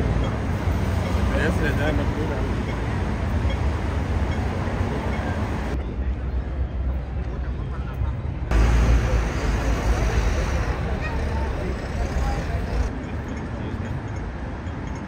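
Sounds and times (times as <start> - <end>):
road traffic rumble: 0.0 - 15.0
crowd chatter: 4.2 - 14.0.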